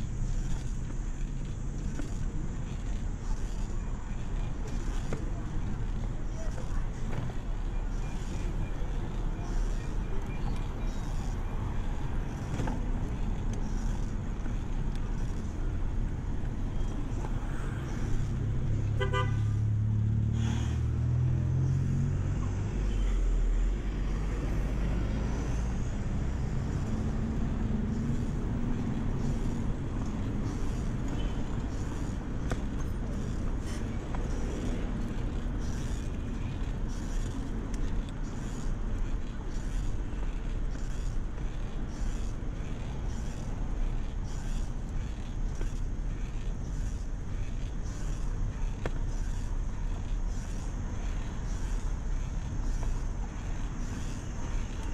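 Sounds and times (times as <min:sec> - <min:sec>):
passing vehicle engine rumble: 0:00.0 - 0:54.9
road rumble: 0:00.0 - 0:54.9
vehicle horn toot: 0:19.0 - 0:19.5.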